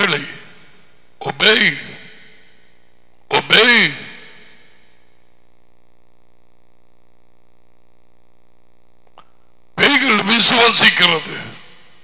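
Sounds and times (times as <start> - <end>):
background hiss and faint hum: 0.0 - 12.0.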